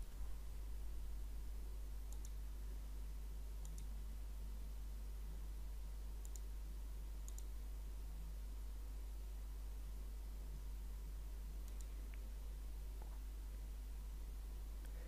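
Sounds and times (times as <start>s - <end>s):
low steady hum: 0.0s - 15.0s
computer mouse clicks: 2.1s - 2.4s, 3.6s - 3.9s, 6.2s - 6.5s, 7.2s - 7.5s, 11.6s - 12.2s.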